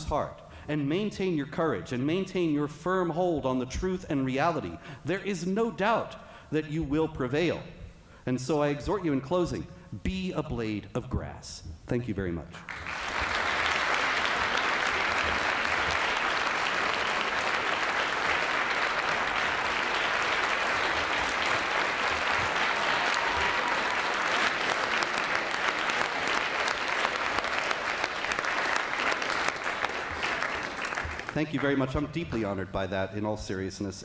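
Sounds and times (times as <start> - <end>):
large audience applauding: 12.7 - 32.1.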